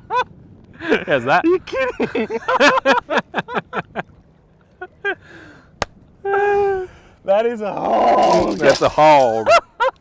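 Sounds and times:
man laughing: 0.0 - 4.2, 4.8 - 5.2, 8.3 - 10.0.

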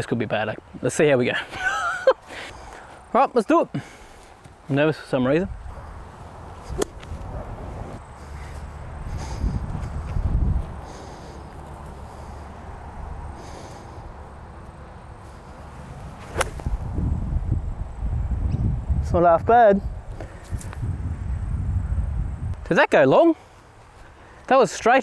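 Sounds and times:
wind rumble on microphone: 5.4 - 14.5, 15.2 - 22.7
golf club striking ball click: 6.8 - 7.1.

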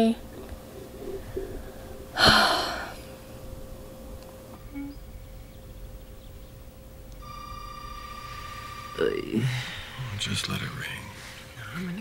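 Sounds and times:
telephone ringing: 7.2 - 10.2.

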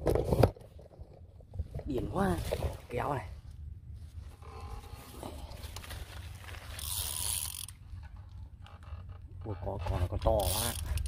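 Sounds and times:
fishing reel drag whirring: 6.5 - 7.8, 10.3 - 11.0.

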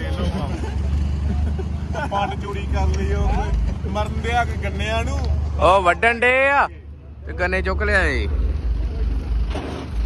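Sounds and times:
men chatting: 0.0 - 9.3
road noise: 0.0 - 10.0
vehicle engine drone: 0.0 - 10.0.

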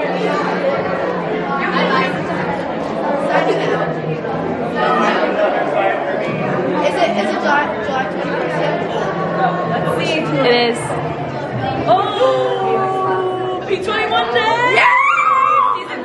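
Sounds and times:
many voices chattering: 0.0 - 16.0.

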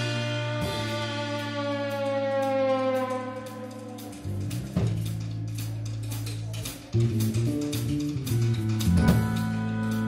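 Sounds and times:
horn note sliding down: 0.0 - 4.3
sustained bass note: 0.0 - 5.5
drum hit: 7.1 - 9.6.

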